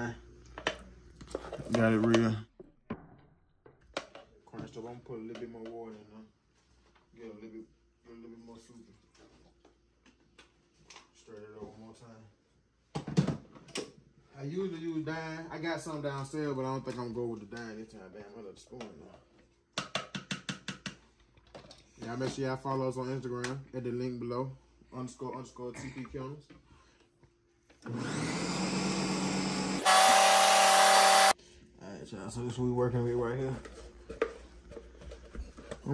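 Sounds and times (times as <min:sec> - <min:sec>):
blender motor whirring: 0:27.8 - 0:31.4.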